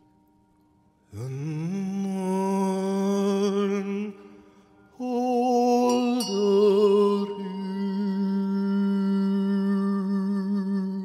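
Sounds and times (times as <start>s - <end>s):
faint steady high tone: 0.0s - 11.0s
voice humming low note: 1.1s - 4.4s, 5.0s - 11.0s.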